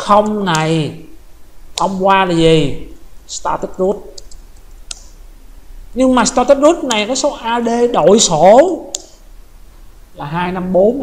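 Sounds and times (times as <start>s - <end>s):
low steady hum: 0.0s - 11.0s
computer keyboard keystrokes: 4.2s - 5.1s.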